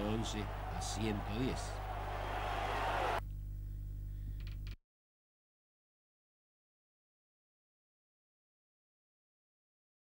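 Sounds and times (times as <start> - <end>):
arena crowd voices: 0.0 - 3.2
steady low hum: 3.2 - 4.7.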